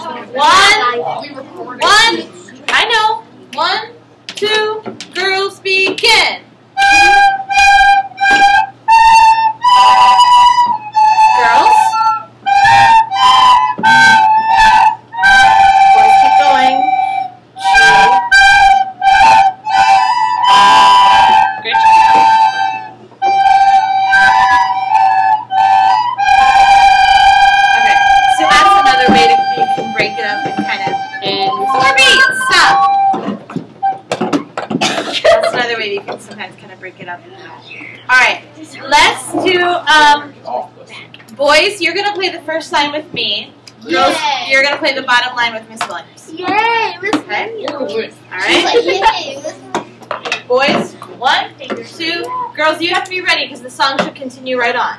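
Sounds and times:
children playing recorders: 6.8 - 34.2.

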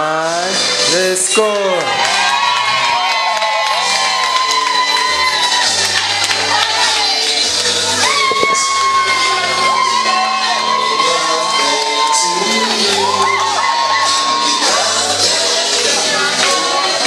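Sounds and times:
loud dance music: 0.0 - 17.0
party crowd cheering and shouting: 0.0 - 17.0.

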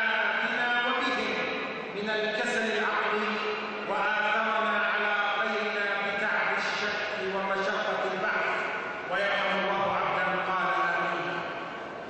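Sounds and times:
man chanting through microphone: 0.0 - 11.7.

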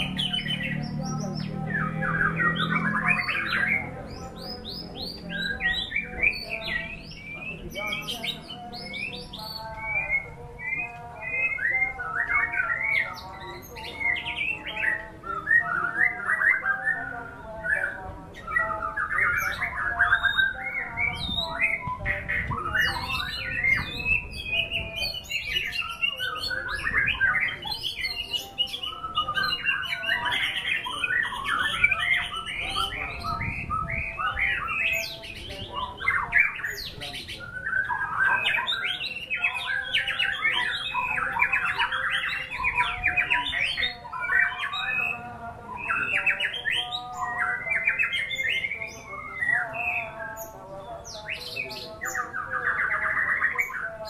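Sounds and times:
songbird singing: 0.0 - 54.0.

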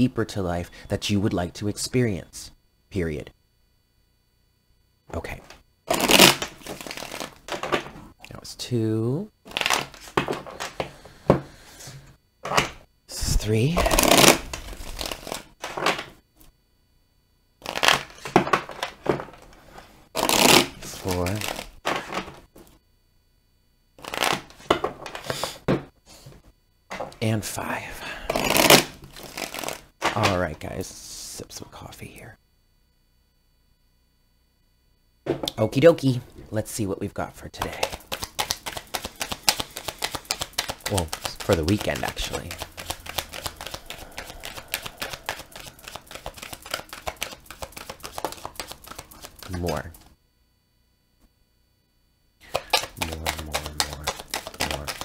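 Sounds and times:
cards being shuffled: 5.9 - 7.8, 9.5 - 10.8, 13.8 - 16.1, 17.6 - 19.0, 20.2 - 22.4, 24.0 - 25.4, 28.3 - 30.2, 37.6 - 50.0, 52.4 - 55.0.

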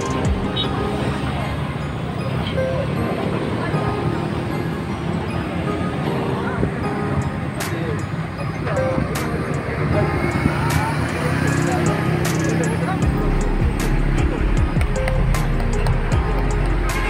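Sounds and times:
music playing: 0.0 - 17.0
traffic noise: 0.0 - 17.0
voices chattering: 0.0 - 17.0.

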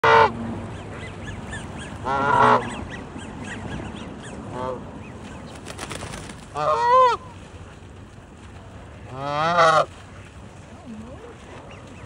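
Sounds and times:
goose honking: 2.0 - 2.9, 6.5 - 7.2, 9.1 - 9.9.

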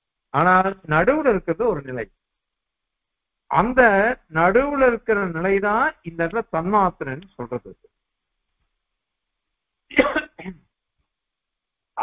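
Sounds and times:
man clearing his throat: 9.9 - 10.6.

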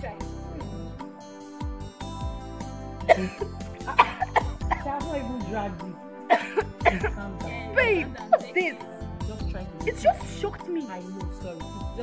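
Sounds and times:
background music with bass line: 0.0 - 12.0
woman coughing: 3.0 - 5.2, 6.3 - 8.8.

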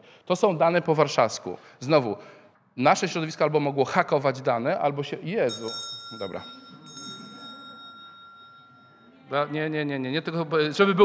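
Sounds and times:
small hand bell ringing: 5.5 - 9.3.

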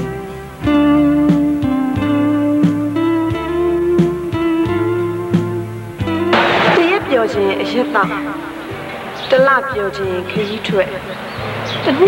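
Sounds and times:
music holding long steady note: 0.0 - 10.6.

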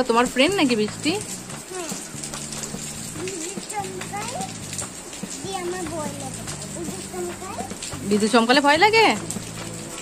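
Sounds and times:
toddler babbling: 1.7 - 2.1, 3.2 - 4.6.

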